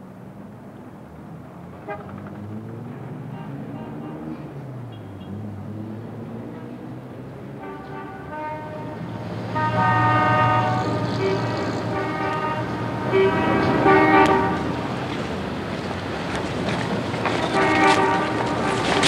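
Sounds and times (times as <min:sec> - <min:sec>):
street traffic noise: 0:00.0 - 0:19.0
car horns honking: 0:03.2 - 0:05.4, 0:07.6 - 0:14.8, 0:17.4 - 0:19.0.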